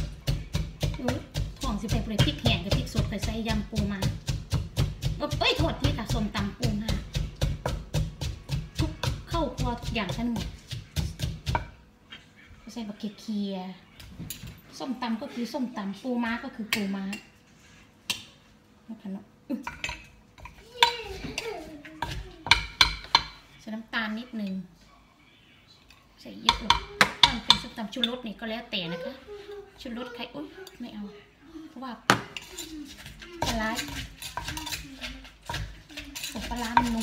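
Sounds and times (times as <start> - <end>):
wooden pestle knocking in mortar: 0.0 - 11.8, 22.0 - 23.4, 26.5 - 27.8, 35.4 - 37.0
metal spoon scraping mortar: 32.3 - 37.0.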